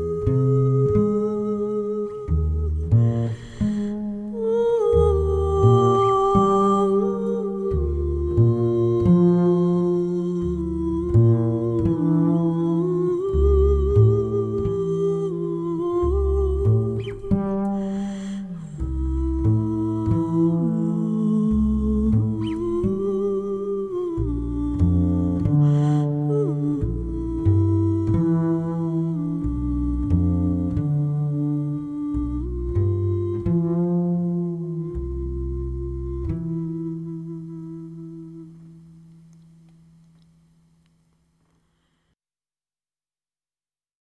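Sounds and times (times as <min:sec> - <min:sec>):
woman humming: 0:00.0 - 0:38.8
double bass notes: 0:00.0 - 0:41.8.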